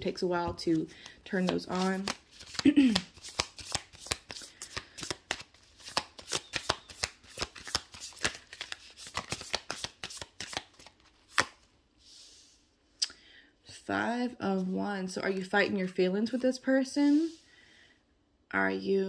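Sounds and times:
cards being shuffled by hand: 0.5s - 11.7s.

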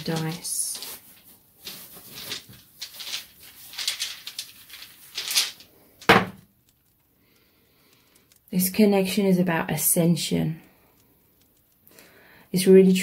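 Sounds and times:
dice rustling in bag: 0.0s - 9.2s.

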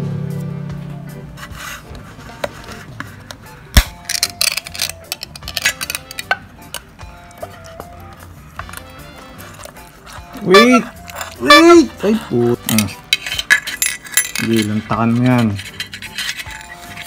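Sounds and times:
can lid scraping: 1.4s - 17.0s
metal can popping open: 3.7s - 6.9s.

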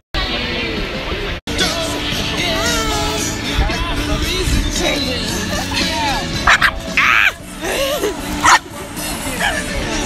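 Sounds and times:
background music: 0.2s - 10.0s
dog barking: 6.4s - 6.8s, 8.4s - 8.6s.

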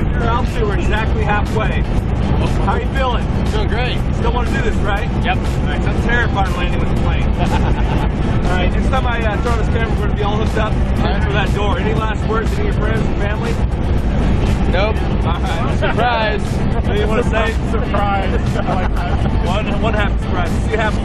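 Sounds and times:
people talking: 0.0s - 13.6s, 14.5s - 21.0s
airplane engine drone in cabin: 0.2s - 20.8s.

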